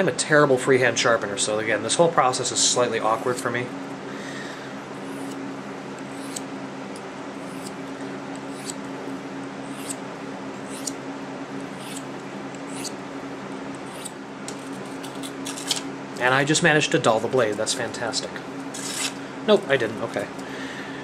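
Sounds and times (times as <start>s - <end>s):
box fan hum: 0.0s - 21.0s
knife blade honing on ceramic rod: 7.5s - 7.8s, 8.4s - 8.8s, 9.7s - 10.0s, 10.7s - 11.0s, 11.8s - 12.1s, 12.7s - 13.0s, 13.9s - 14.2s.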